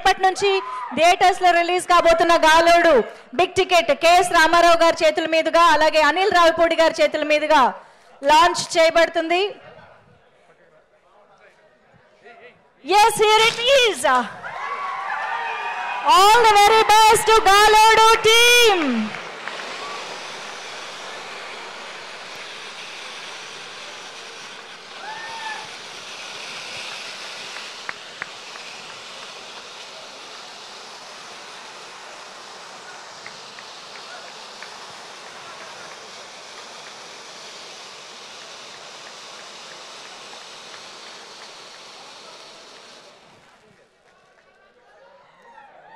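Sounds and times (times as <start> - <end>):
event hall noise: 9.6 - 26.9, 41.9 - 45.9
rising and falling tone: 14.4 - 30.7.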